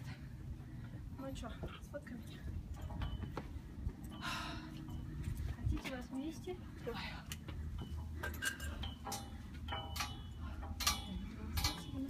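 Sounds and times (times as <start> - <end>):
low wind rumble on microphone: 0.0 - 12.0.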